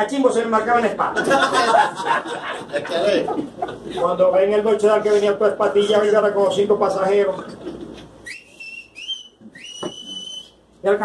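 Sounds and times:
man whistling through lips: 0:08.2 - 0:10.6.

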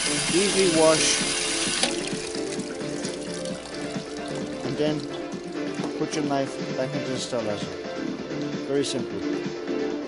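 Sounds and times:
water spray hissing into steel basin: 0:00.0 - 0:05.7
background music: 0:00.0 - 0:10.0.

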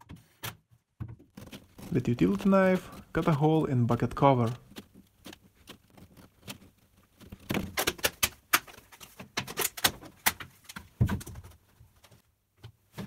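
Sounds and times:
plastic clicks and cracks: 0:04.0 - 0:12.8.

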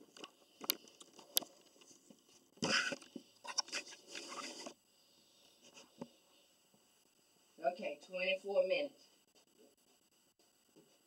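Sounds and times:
rustling scrape: 0:03.5 - 0:04.8.

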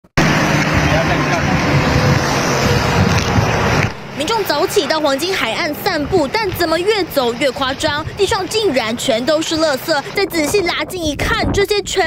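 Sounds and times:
wind buffeting microphone: 0:00.2 - 0:12.0.

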